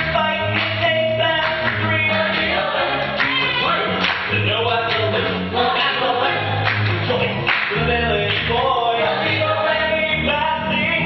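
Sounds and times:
ensemble singing in chorus: 0.0s - 11.0s.

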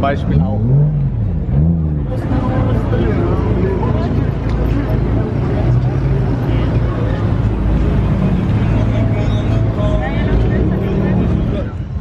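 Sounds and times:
car engine rumbling at low revs: 0.0s - 12.0s
crowd chatter: 0.0s - 12.0s.

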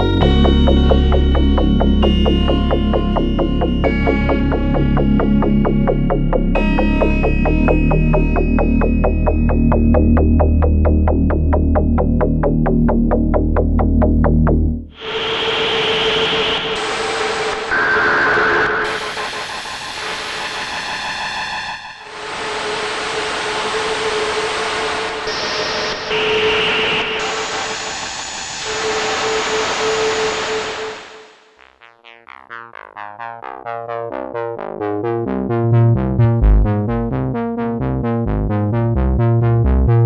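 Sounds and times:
sparse plucked synthesizer notes: 0.0s - 14.9s, 31.6s - 40.0s
sequenced synthesizer pattern with bass: 0.0s - 15.0s, 31.0s - 40.0s.

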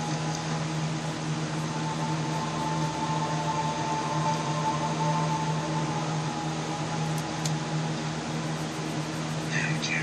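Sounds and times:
faint held tone: 0.0s - 9.4s
room hum: 0.0s - 10.0s.

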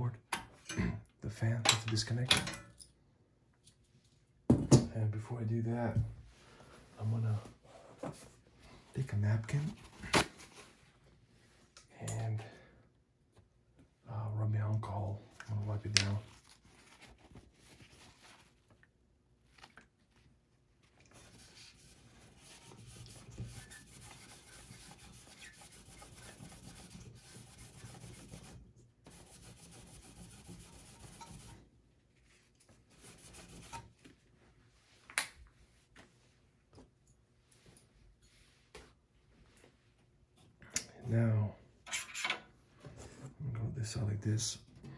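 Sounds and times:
paper napkin scrubbing metal: 21.2s - 31.6s.

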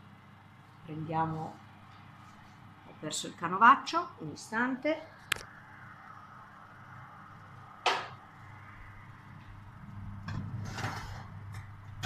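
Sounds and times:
steady low hum: 0.0s - 12.0s
scraping and rustling: 10.3s - 11.6s.

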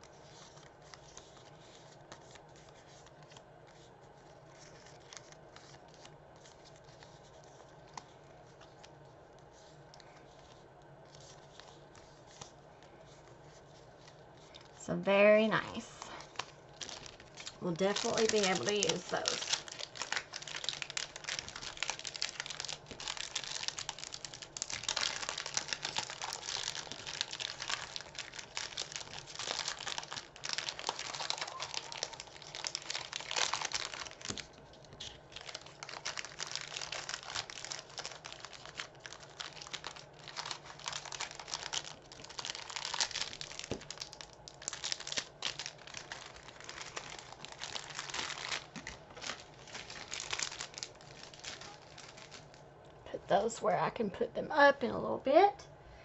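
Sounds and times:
plastic bags crinkling: 0.0s - 52.7s.

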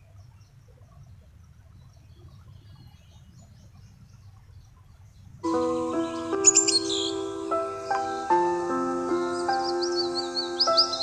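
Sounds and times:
bird chirps: 0.0s - 11.0s
faint low background noise: 0.0s - 11.0s
slow sustained chords: 5.4s - 11.0s.

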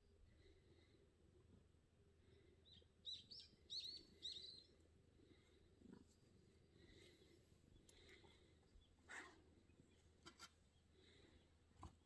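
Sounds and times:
small bird chirping: 2.6s - 4.8s.

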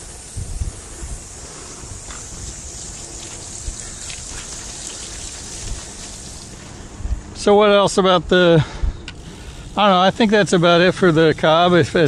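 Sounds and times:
tyres hissing through water: 0.0s - 12.0s.

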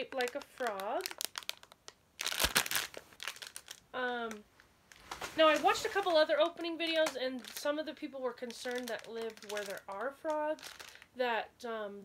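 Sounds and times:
plastic bag crinkling: 0.0s - 11.2s.

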